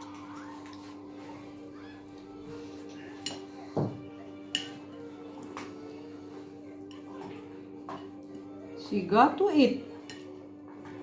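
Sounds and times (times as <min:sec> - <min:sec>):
cutlery clinking on a plate: 0:03.2 - 0:05.0.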